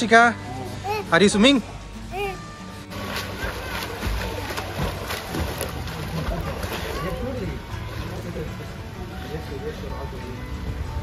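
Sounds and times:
music: 0.0 - 11.0
water splashing from swimming: 2.8 - 9.0.

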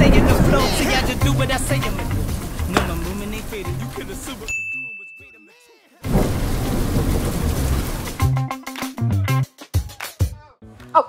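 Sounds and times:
music: 0.0 - 6.0, 7.6 - 11.0.

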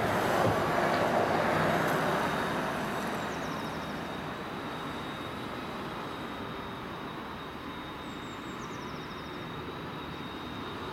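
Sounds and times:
ambulance engine and tyre noise: 0.0 - 10.9.

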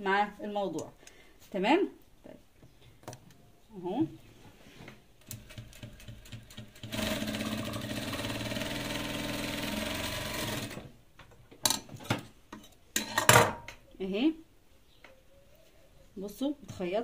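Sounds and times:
sewing machine stitching: 5.2 - 10.9.

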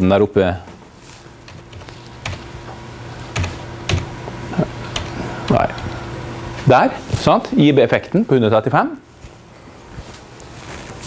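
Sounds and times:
steady low hum: 0.0 - 11.0
computer keyboard clicks: 3.3 - 4.1.

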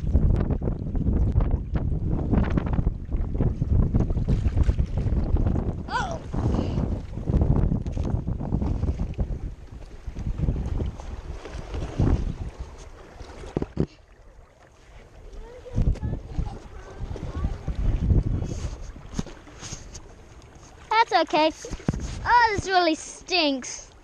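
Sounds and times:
wind rumbling on microphone: 0.0 - 24.0
knocks and scrapes on rock: 13.4 - 14.0, 21.6 - 22.7.

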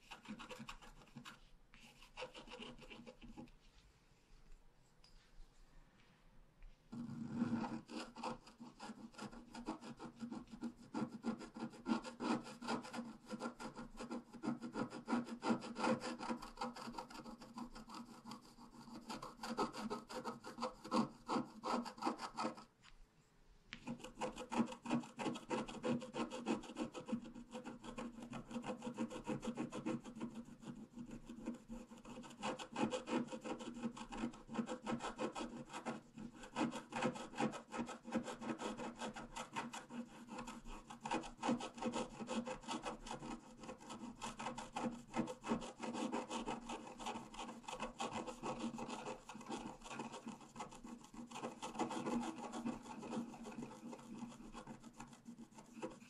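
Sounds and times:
stylus scratching coated sheet: 0.0 - 4.0, 6.9 - 22.8, 23.7 - 56.0.

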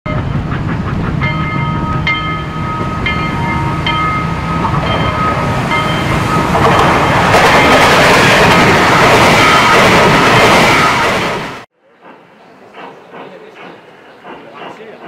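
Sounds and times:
train rumbling on rails: 0.1 - 15.0
train rushing by: 0.1 - 15.0
high ringing tones: 1.2 - 10.9.

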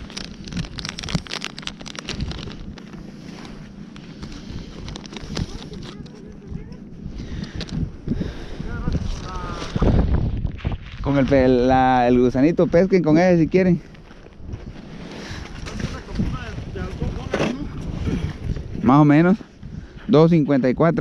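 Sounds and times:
plastic packet rustling: 0.0 - 6.6
wind on microphone: 0.0 - 13.6, 14.4 - 20.2.

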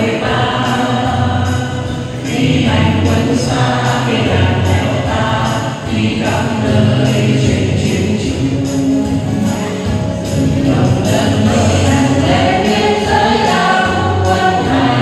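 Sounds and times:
accompanying music: 0.0 - 15.0
group singing into microphones: 0.0 - 15.0.

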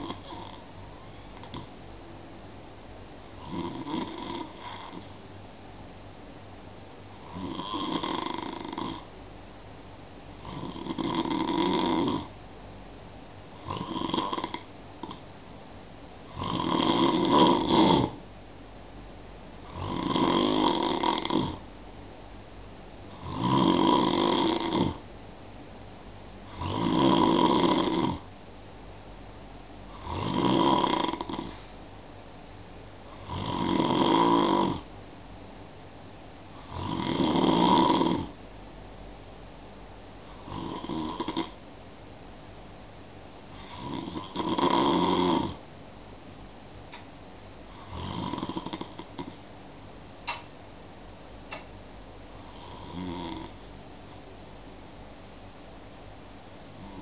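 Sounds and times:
person snoring: 0.0 - 1.7, 3.4 - 5.2, 7.1 - 9.1, 10.4 - 12.3, 13.6 - 15.2, 16.3 - 18.2, 19.6 - 21.6, 23.1 - 25.0, 26.5 - 28.3, 29.9 - 31.8, 33.1 - 34.9, 36.5 - 38.4, 40.2 - 41.6, 43.5 - 45.6, 47.7 - 49.5, 52.4 - 54.2, 56.6 - 57.0
quiet breathing: 0.0 - 1.8, 3.3 - 5.4, 31.1 - 31.9, 40.1 - 41.6, 43.4 - 44.5, 52.3 - 54.4, 56.3 - 57.0.

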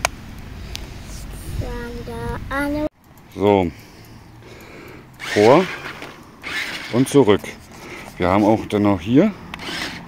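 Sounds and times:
low background rumble: 0.0 - 2.9.

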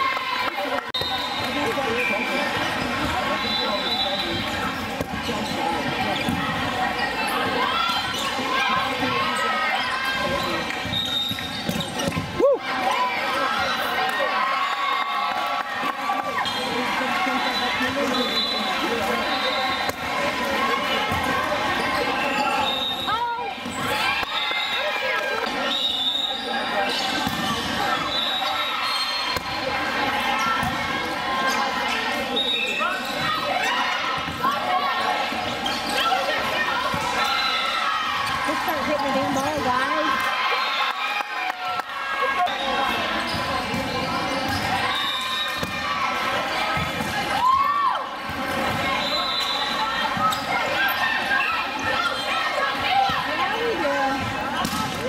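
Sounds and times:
volleyball struck and bouncing: 54.6 - 55.0.

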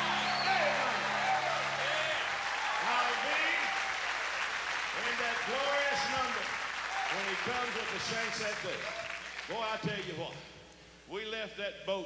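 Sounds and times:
band held chord: 0.0 - 3.7
voices ringing out: 0.0 - 4.0
audience applauding: 0.0 - 9.9.

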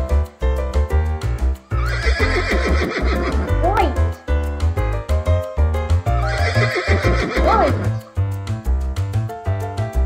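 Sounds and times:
background music with steady beat: 0.0 - 10.0
horse whinny: 1.7 - 3.5, 6.2 - 8.0.

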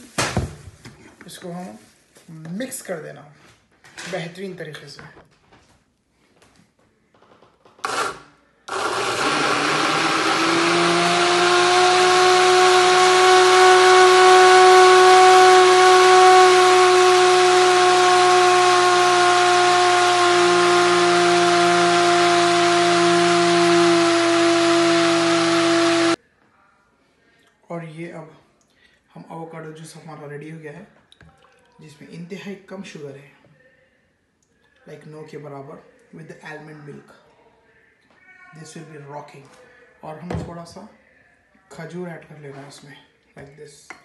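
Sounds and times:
blender motor whining: 7.8 - 26.2.

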